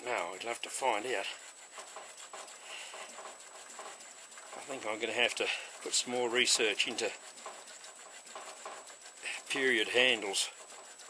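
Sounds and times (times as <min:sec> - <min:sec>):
hand tool scraping and rubbing: 0:00.0 - 0:11.0.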